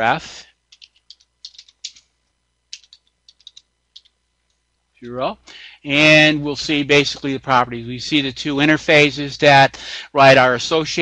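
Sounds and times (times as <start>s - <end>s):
computer keyboard typing: 0.7s - 2.1s, 2.7s - 4.2s.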